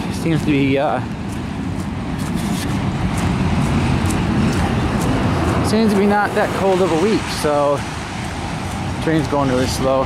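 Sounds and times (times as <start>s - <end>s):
low traffic rumble: 0.0s - 10.0s
pickup truck approaching on wet road: 3.0s - 9.9s.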